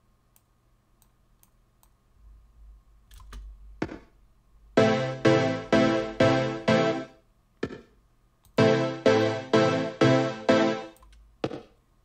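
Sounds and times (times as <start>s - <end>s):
pumping synth pad chords: 4.8s - 7.1s, 8.6s - 11.0s.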